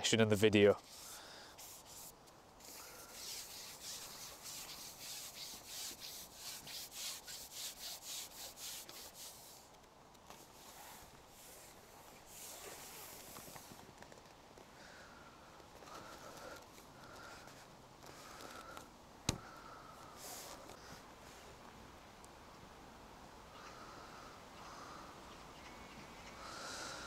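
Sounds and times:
fishing pole rubbing through hands: 0.8s - 9.7s, 10.3s - 13.8s.

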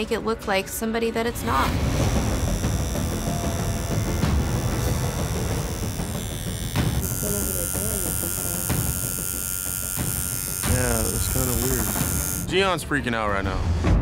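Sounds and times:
electric tattoo machines buzzing: 1.8s - 12.6s.

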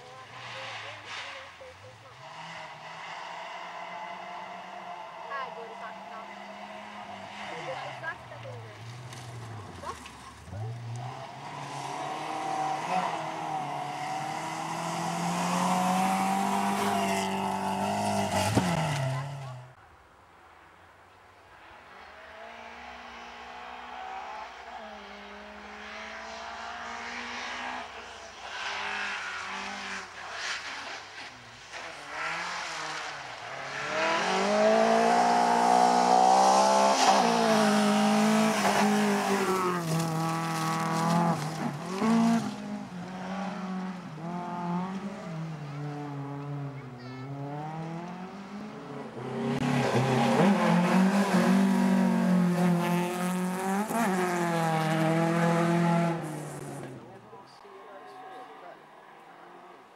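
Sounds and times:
rally car engines revving: 0.0s - 19.8s, 21.8s - 59.9s.

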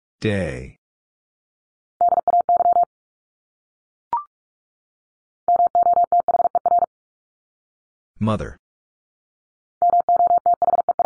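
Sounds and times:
morse code beeps: 2.0s - 2.9s, 5.5s - 6.9s, 9.8s - 11.0s.

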